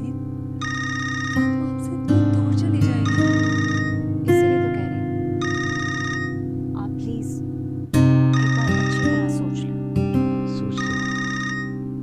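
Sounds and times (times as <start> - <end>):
background music: 0.0 - 12.0
phone ringtone ringing: 0.6 - 1.8, 3.0 - 4.1, 5.4 - 6.5, 8.3 - 9.4, 10.8 - 12.0.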